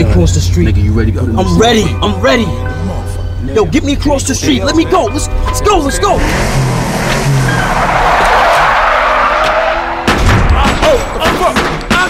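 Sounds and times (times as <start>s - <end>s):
car tyres screeching: 5.1s - 11.2s.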